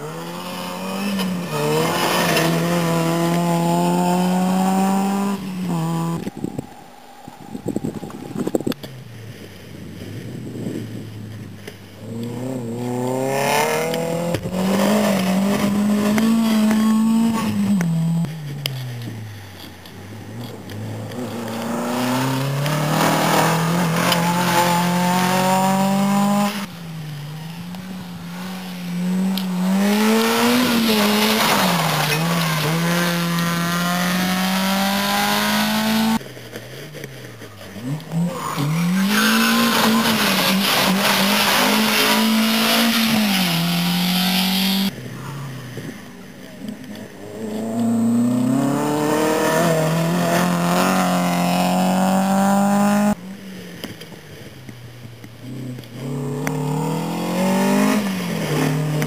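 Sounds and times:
rally car engines revving: 0.0s - 6.7s, 7.4s - 59.0s.

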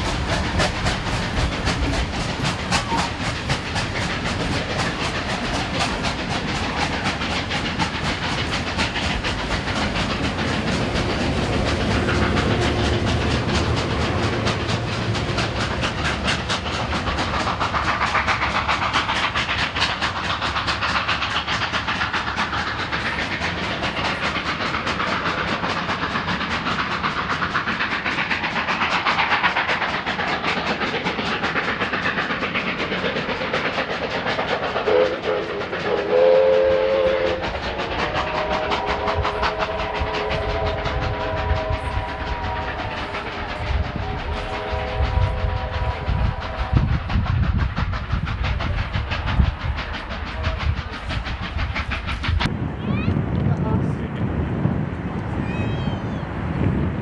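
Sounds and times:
train wheels clattering on track: 0.0s - 54.3s
locomotive whistle blasts: 36.0s - 37.4s, 38.3s - 46.9s.

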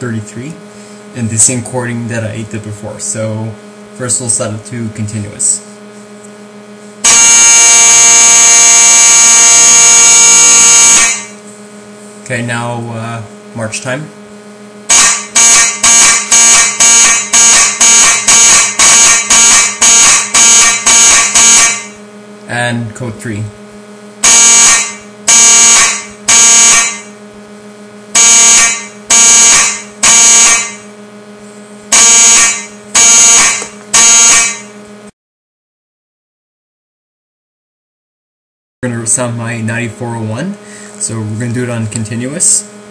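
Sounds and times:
fire alarm horn steady buzzy tone: 5.4s - 12.1s, 14.2s - 22.6s, 23.6s - 35.1s.

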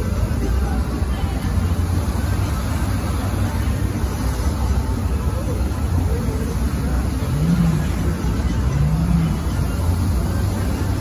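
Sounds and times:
fountain water jets rushing: 0.0s - 11.0s.

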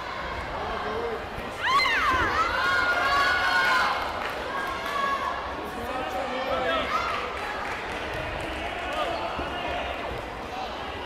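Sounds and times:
many voices echoing in hall: 0.0s - 11.0s.

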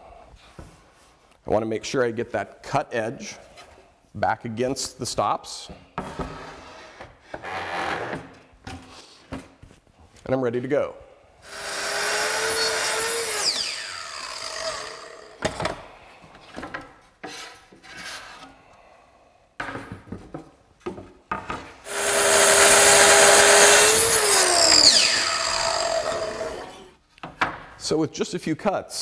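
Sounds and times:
saw motor winding down: 11.4s - 15.4s, 21.9s - 26.9s
track saw cutting wood: 11.4s - 15.4s, 21.9s - 27.0s.

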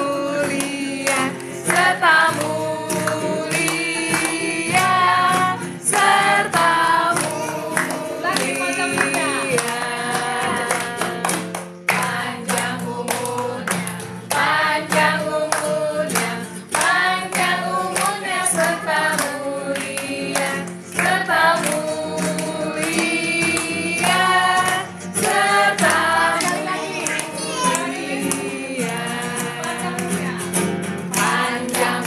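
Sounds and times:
hands clapping in time: 0.0s - 32.0s
women and children singing: 0.0s - 32.0s.

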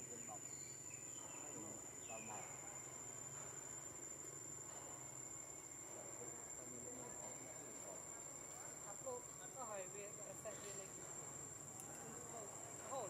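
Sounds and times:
insect chorus trilling: 0.0s - 13.0s.

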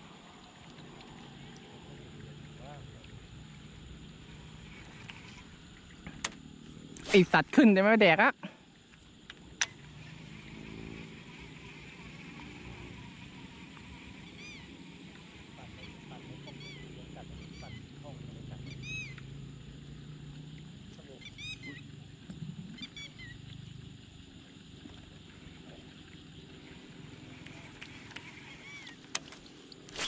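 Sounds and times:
faint low murmur: 0.2s - 5.0s
short arched bird calls: 13.9s - 14.9s, 15.6s - 17.9s, 18.6s - 19.2s, 21.2s - 21.8s, 27.5s - 29.0s.

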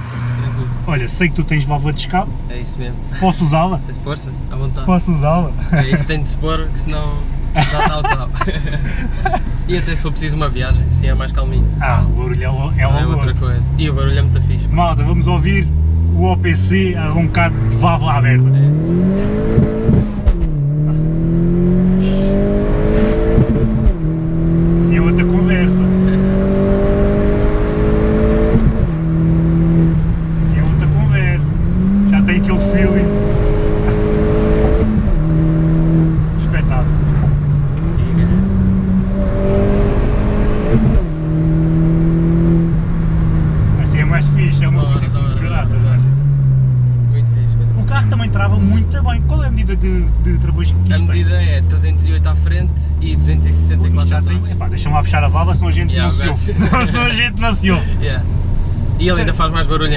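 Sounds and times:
car engine accelerating through gears: 0.0s - 4.5s, 9.3s - 59.9s.

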